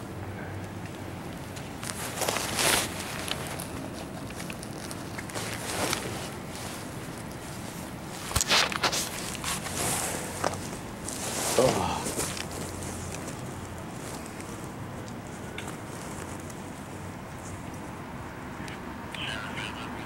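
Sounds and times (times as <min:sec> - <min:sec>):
steady low hum: 0:00.0 - 0:20.0
scuffing and rustling: 0:01.5 - 0:17.6.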